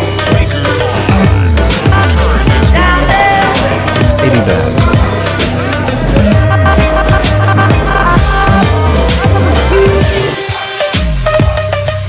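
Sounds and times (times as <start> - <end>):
drums: 0.0 - 12.0.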